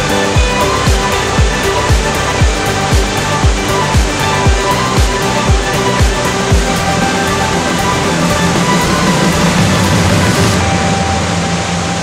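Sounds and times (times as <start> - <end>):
background music: 0.0 - 12.0
waterfall rushing: 0.0 - 12.0.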